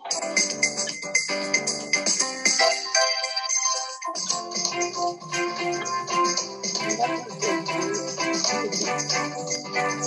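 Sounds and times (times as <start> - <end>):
electronic keyboard playing: 0.0 - 10.0.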